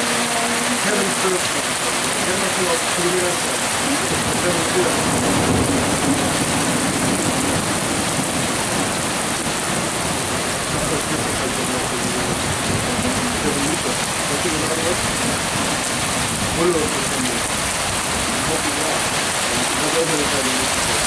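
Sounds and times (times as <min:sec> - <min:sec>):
heavy rain on paving: 0:00.0 - 0:21.0.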